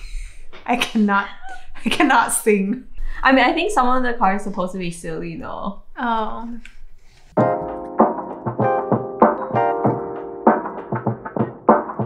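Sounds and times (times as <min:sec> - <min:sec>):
bouncy piano music: 0:07.4 - 0:12.0.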